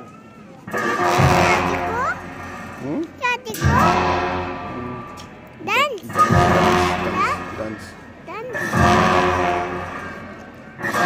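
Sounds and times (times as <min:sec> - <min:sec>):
large cymbals ringing: 0:00.7 - 0:11.0
low drumming: 0:00.7 - 0:11.0.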